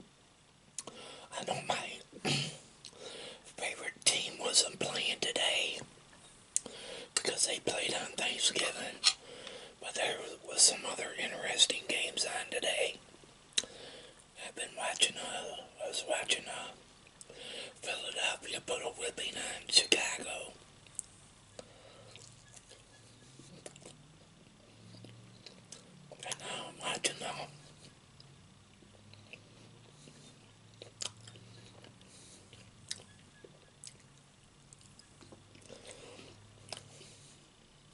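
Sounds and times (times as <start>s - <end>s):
man whispering: 1.3s - 2.2s, 3.4s - 5.9s, 7.2s - 9.2s, 9.8s - 13.0s, 14.4s - 16.8s, 17.8s - 20.6s, 26.2s - 27.8s.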